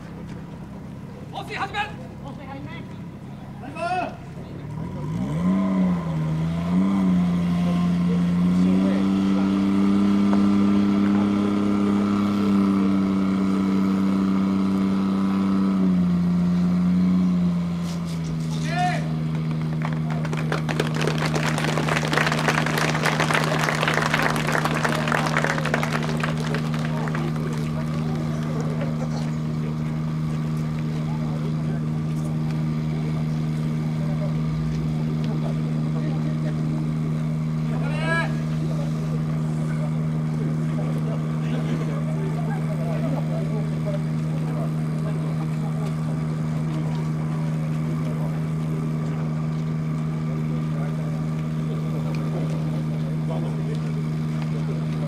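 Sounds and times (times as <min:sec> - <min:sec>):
fire pump engine revving: 0:00.0 - 0:55.0.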